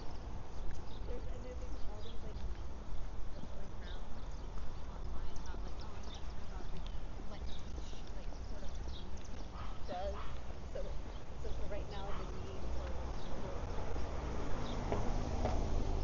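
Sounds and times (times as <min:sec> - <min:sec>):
faint voices of passers-by: 0:00.0 - 0:16.0
footsteps on sidewalk: 0:00.0 - 0:16.0
steady low rumble: 0:00.0 - 0:16.0.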